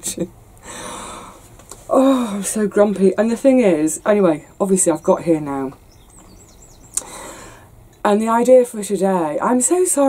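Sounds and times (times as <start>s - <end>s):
faint bird chirps: 5.8s - 7.3s.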